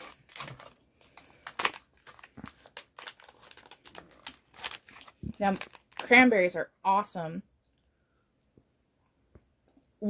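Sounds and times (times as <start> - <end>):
foil wrapper crinkling: 0.0 - 6.3.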